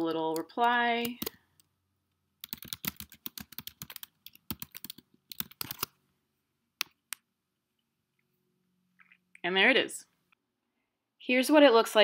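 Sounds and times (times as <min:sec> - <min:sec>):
computer keyboard typing: 0:00.3 - 0:01.4, 0:02.4 - 0:05.9.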